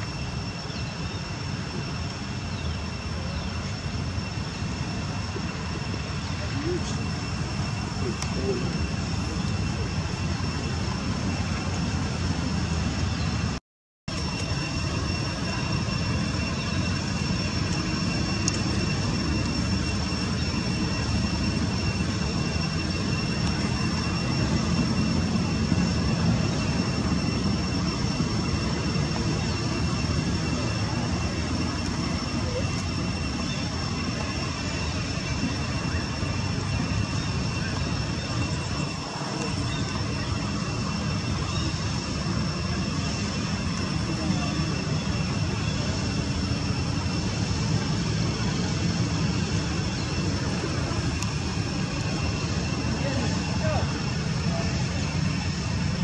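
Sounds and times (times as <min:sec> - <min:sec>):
high-pitched whine: 0:00.0 - 0:56.0.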